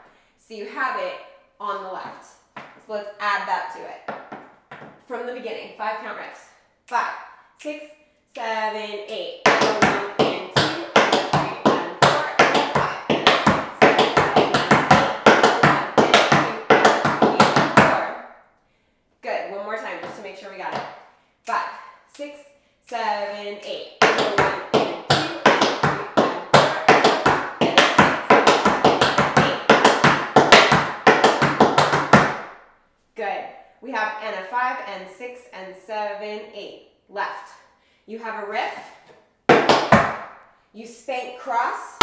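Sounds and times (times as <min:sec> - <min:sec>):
tap shoes on wooden board: 0:02.6 - 0:02.8, 0:04.1 - 0:05.0, 0:09.5 - 0:18.0, 0:24.0 - 0:32.5, 0:39.5 - 0:40.3.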